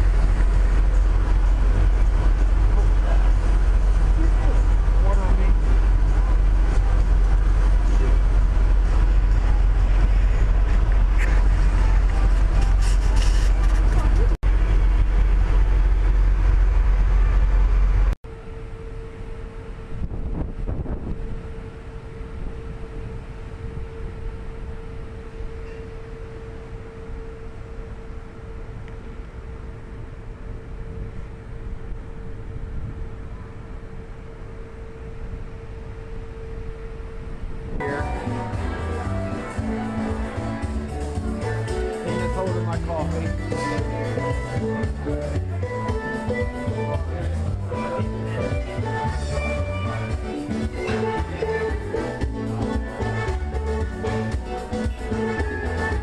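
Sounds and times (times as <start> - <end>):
wind buffeting microphone: 0.0 - 18.2, 19.7 - 25.6, 28.6 - 37.9
steady hum with faint tone: 0.0 - 42.2.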